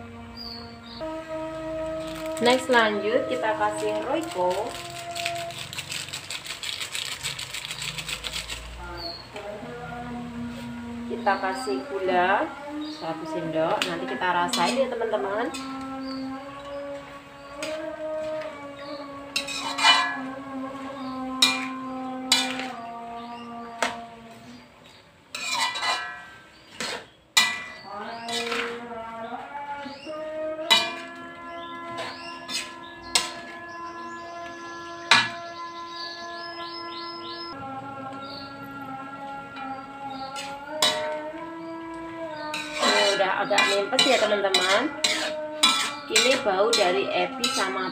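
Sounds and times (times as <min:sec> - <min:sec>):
background music: 0:00.0 - 0:25.2, 0:27.5 - 0:47.9
metal spatula scraping a wok: 0:01.6 - 0:08.8, 0:13.7 - 0:18.4, 0:19.2 - 0:22.9, 0:25.3 - 0:29.1, 0:29.8 - 0:33.8, 0:40.3 - 0:41.2, 0:42.3 - 0:47.9.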